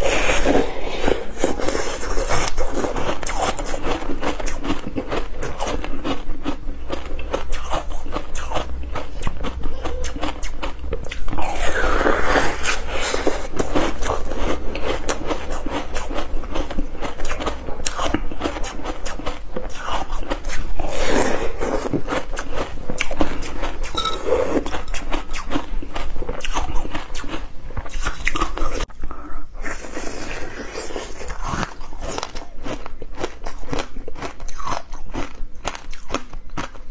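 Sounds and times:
crunchy biting and chewing: 0:00.0 - 0:36.9.

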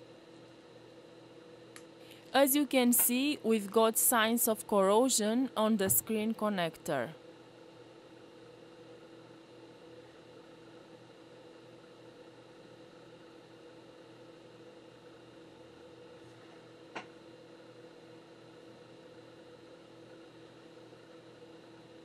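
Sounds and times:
faint machine hum with tones: 0:00.0 - 0:22.0.

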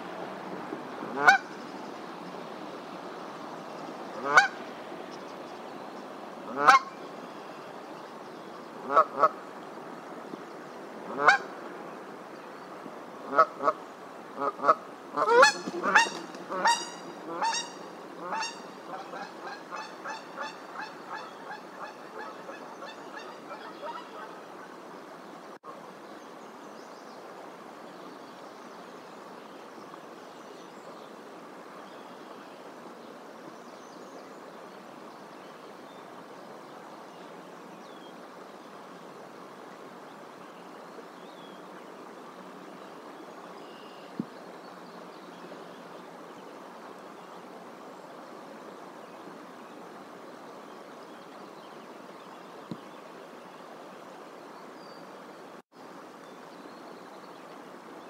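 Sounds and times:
background hiss: 0:00.0 - 0:58.0
goose honking: 0:01.1 - 0:01.4, 0:14.6 - 0:24.1.

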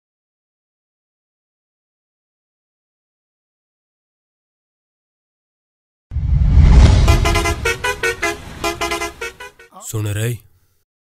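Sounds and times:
horn toots playing a tune: 0:06.9 - 0:09.9.

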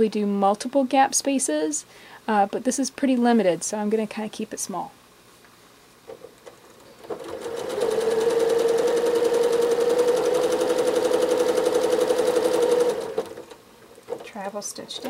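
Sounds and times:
sewing machine stitching: 0:06.5 - 0:14.4.

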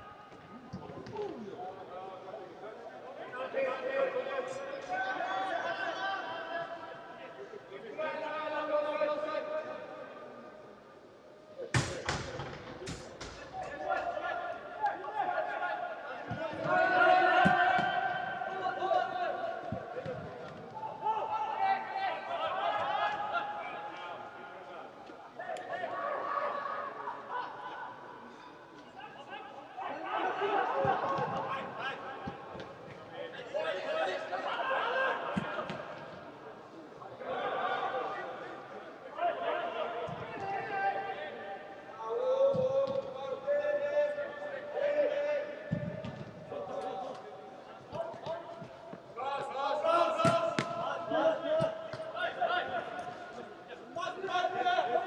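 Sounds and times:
footballers shouting in indoor hall: 0:00.0 - 0:55.0.

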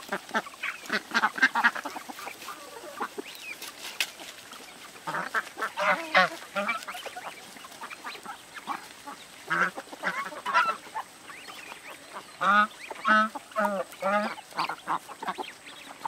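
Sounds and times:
ducks quacking: 0:00.0 - 0:16.0.

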